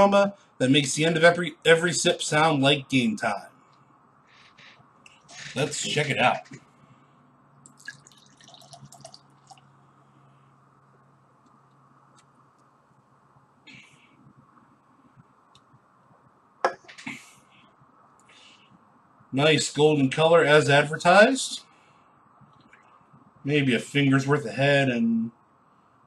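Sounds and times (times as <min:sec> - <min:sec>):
beer pouring and fizzing: 0:07.7 - 0:09.9.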